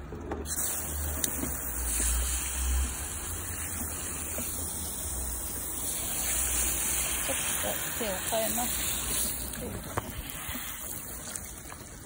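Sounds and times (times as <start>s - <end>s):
hose water spraying on car: 0.4s - 12.0s.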